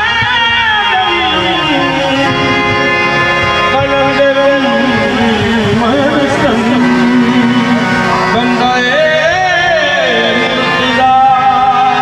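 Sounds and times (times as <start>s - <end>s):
person singing: 0.0s - 2.6s, 3.7s - 12.0s
harmonium notes: 0.0s - 12.0s.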